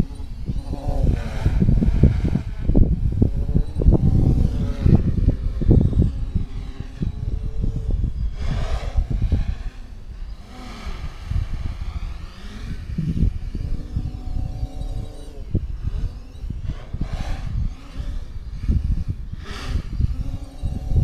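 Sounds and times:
quadcopter motors whining: 0:00.0 - 0:21.0
wind on microphone: 0:00.0 - 0:21.0.

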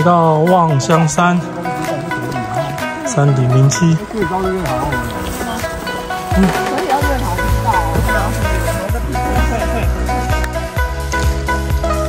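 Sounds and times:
sustained melodic tones: 0:00.0 - 0:12.0
low bass line: 0:01.4 - 0:12.0.

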